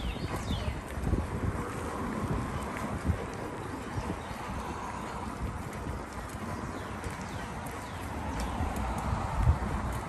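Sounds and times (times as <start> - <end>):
bicycle tyres rumbling: 0.0 - 10.0.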